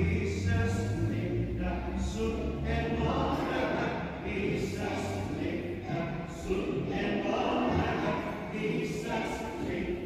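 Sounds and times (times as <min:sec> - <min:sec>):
children singing in unison: 0:00.0 - 0:10.0.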